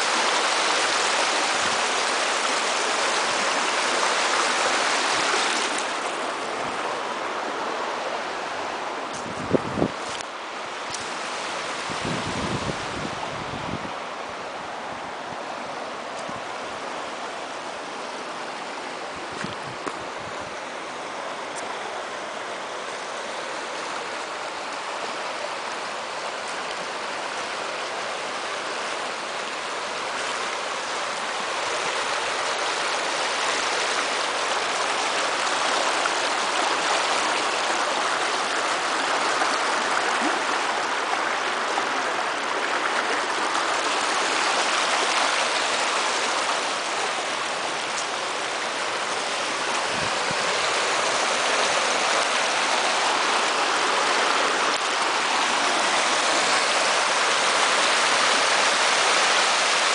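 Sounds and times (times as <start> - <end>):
brook rushing over rocks: 29.5 - 59.9.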